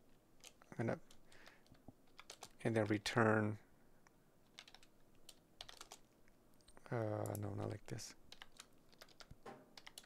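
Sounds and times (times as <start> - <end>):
faint keyboard typing: 0.4 - 3.1, 4.4 - 10.0.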